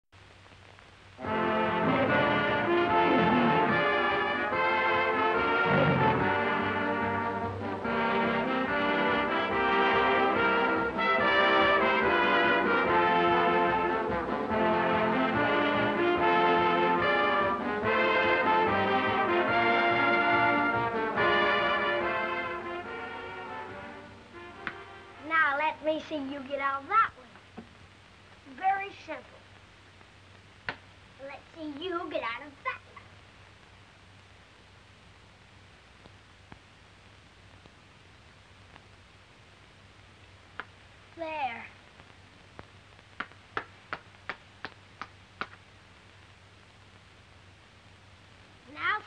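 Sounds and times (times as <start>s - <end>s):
orchestral music with brass: 1.2s - 25.2s.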